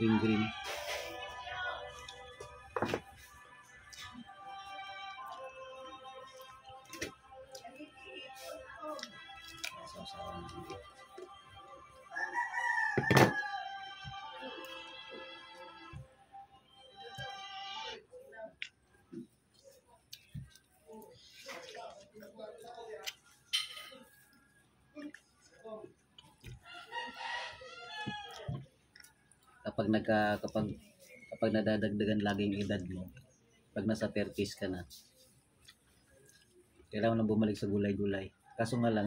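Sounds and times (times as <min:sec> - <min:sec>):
man speaking: 0:00.0 - 0:00.8, 0:09.7 - 0:10.9, 0:29.7 - 0:30.8, 0:31.4 - 0:33.1, 0:33.8 - 0:35.0, 0:37.0 - 0:39.0
rooster crowing: 0:12.1 - 0:14.2, 0:26.6 - 0:28.6.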